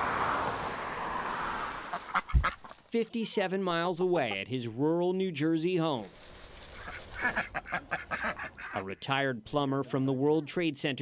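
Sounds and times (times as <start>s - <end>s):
road traffic hiss: 0.0s - 2.8s
ducks quacking: 1.9s - 2.7s, 6.8s - 9.0s.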